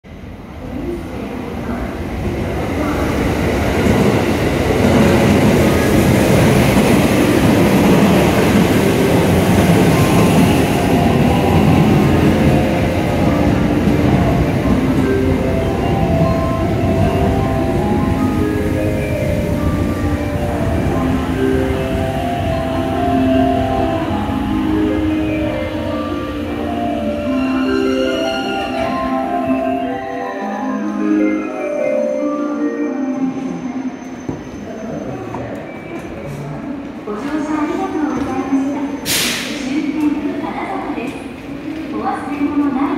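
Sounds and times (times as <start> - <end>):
electric train arriving: 0.1 - 42.9
melody of short notes: 8.9 - 33.9.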